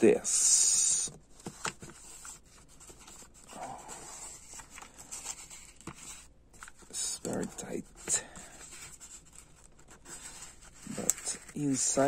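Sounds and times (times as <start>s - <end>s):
cardboard scraping against plastic: 1.4s - 12.0s.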